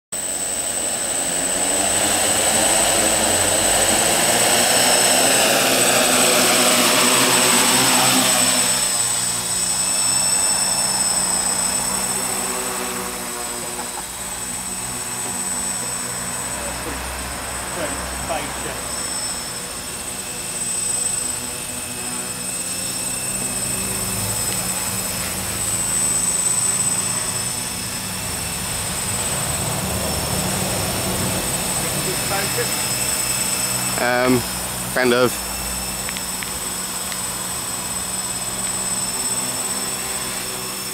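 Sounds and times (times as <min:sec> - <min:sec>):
drone propellers buzzing: 0:00.2 - 0:40.9.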